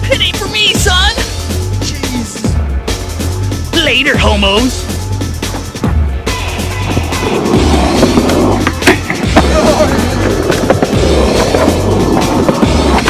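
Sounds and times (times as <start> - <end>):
music with repeating bass beat: 0.0 - 13.0
skateboard wheels rolling on pavement: 5.4 - 13.0
sharp skateboard clack: 8.0 - 13.0.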